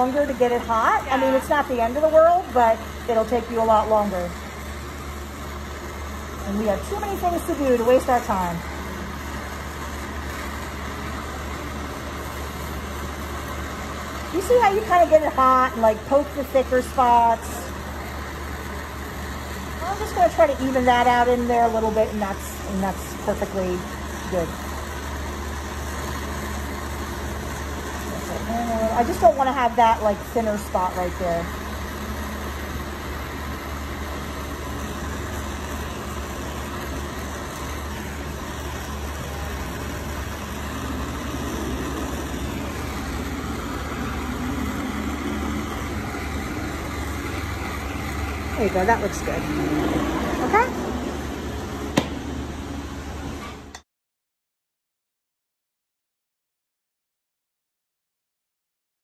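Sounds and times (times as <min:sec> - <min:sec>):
woman's voice: 0:00.0 - 0:04.4, 0:06.4 - 0:08.7, 0:14.4 - 0:17.7, 0:19.8 - 0:24.6, 0:28.2 - 0:31.5, 0:48.5 - 0:50.8
gas torch flame hissing: 0:00.0 - 0:53.8.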